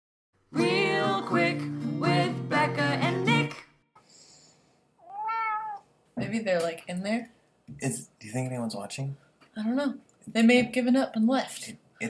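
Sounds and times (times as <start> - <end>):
cat meowing: 5.0 - 5.9.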